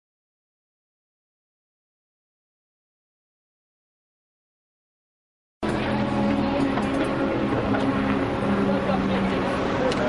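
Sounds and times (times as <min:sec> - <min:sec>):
vehicle engine running: 0:05.6 - 0:10.0.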